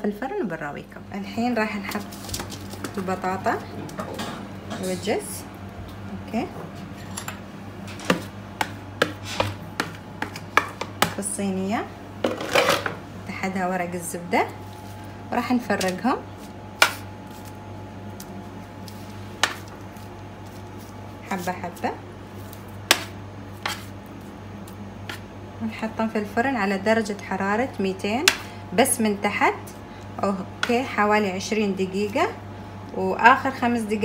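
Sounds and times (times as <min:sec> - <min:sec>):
steady low hum: 0:00.0 - 0:34.0.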